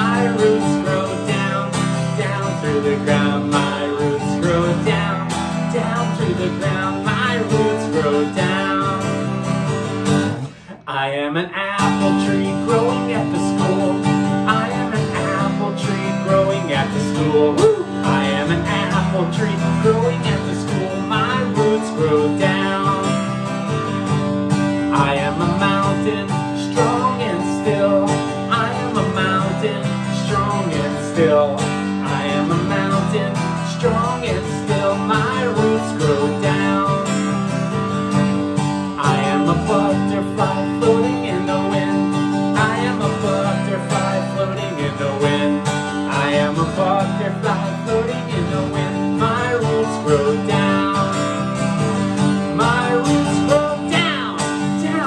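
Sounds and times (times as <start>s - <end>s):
acoustic guitar strummed: 0.0s - 55.0s.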